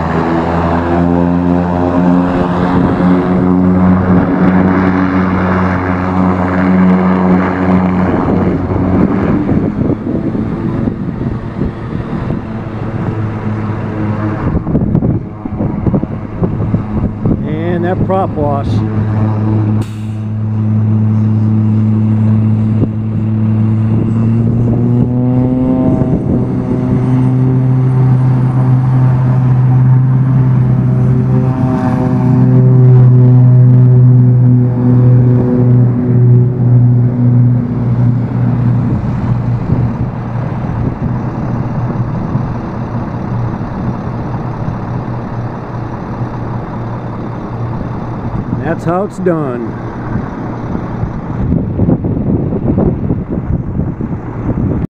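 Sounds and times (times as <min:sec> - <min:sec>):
engine drone: 0:00.0 - 0:54.9.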